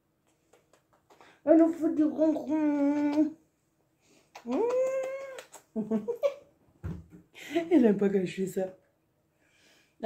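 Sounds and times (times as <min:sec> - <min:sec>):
woman laughing: 0:05.8 - 0:06.4.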